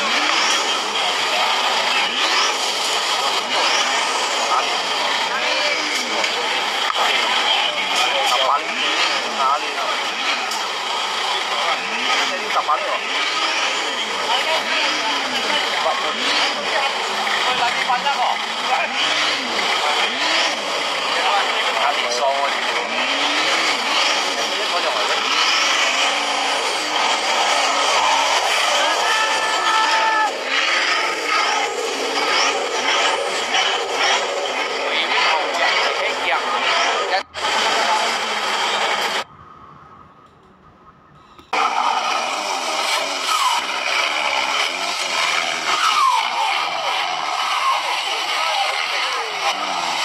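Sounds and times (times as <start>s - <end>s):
crowd chatter: 0.0s - 50.0s
vehicle engine revving: 0.0s - 50.0s.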